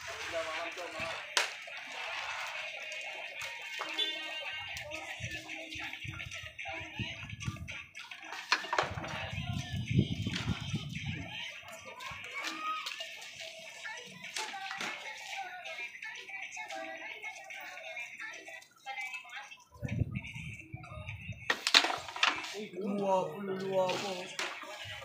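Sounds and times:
voices: 0.0 - 25.0.

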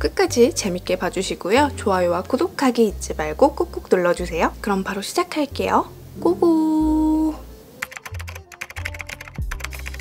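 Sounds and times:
keyboard typing clicks: 7.8 - 10.0
background music with bass: 8.2 - 10.0.

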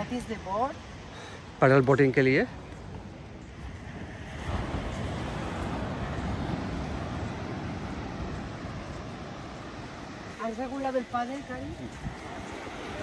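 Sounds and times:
surf washing on beach: 0.0 - 13.0
wind on microphone: 2.5 - 13.0.

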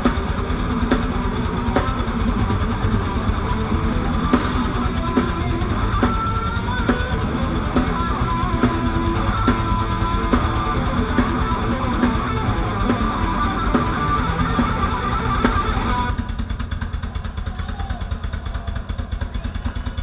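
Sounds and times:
distorted electric guitars: 0.0 - 16.6
drum kit beat: 0.0 - 20.0.

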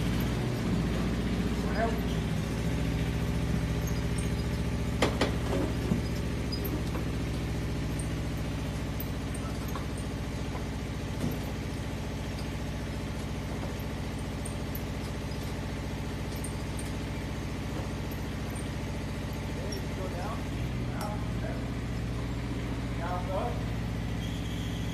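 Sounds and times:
crane engine running: 0.0 - 24.9.

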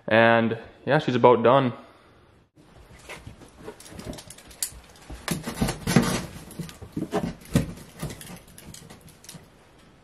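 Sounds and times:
hands handling electrical wire: 2.8 - 10.0.

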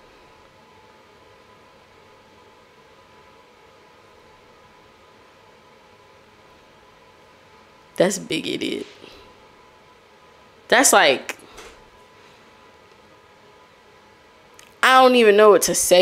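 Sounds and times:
faint steady hiss: 0.0 - 16.0
thin steady hum: 0.0 - 16.0.

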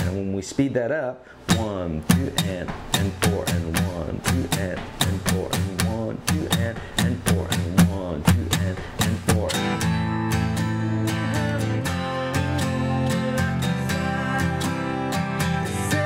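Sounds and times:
acoustic guitar strumming: 0.0 - 0.2, 1.4 - 16.0.

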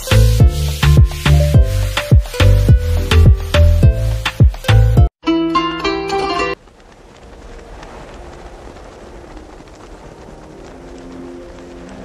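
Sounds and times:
shop-floor ambience hiss: 0.0 - 4.8
plucked-string music: 0.0 - 6.6.

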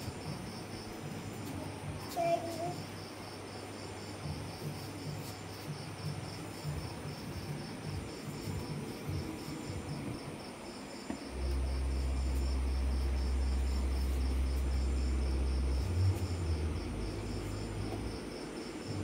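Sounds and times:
cricket chirping: 0.0 - 19.0
steady low hum: 0.0 - 19.0.

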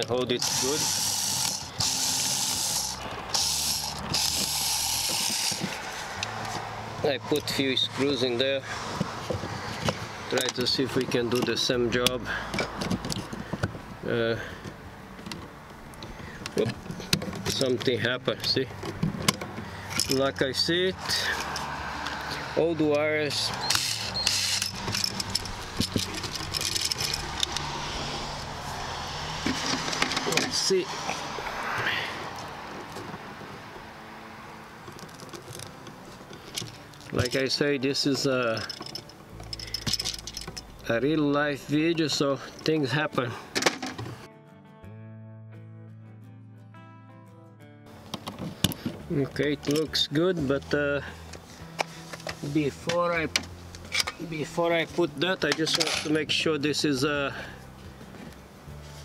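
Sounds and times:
screwdriver turning screw: 0.0 - 6.5, 23.5 - 27.7.

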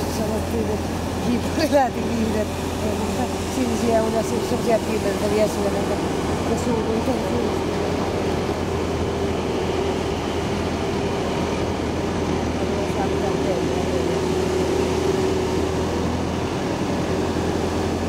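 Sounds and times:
machine drone: 0.0 - 18.0.

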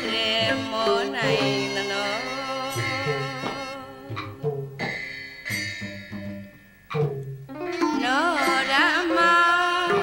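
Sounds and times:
plucked string notes: 0.0 - 10.0.

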